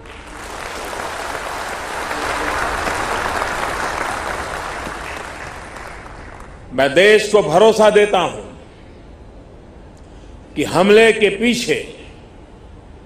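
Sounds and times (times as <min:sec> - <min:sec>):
audience applauding: 0:00.0 - 0:06.7.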